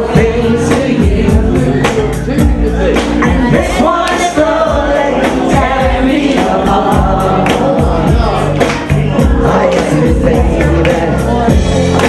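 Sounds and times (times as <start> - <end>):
loud backing music with beat: 0.0 - 12.0
voices singing along: 0.0 - 12.0
woman singing into a microphone: 0.0 - 12.0.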